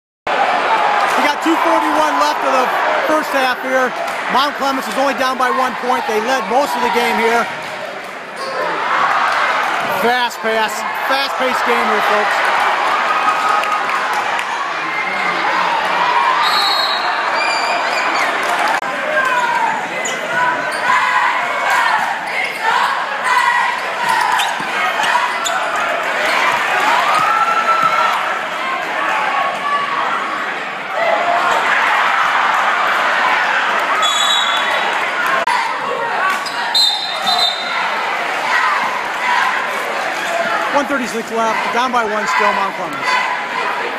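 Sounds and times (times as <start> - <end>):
crowd shouting and cheering: 0.3 - 43.9
sneakers squeaking: 19.2 - 21.1, 21.7 - 23.0, 24.0 - 27.9, 36.2 - 37.9.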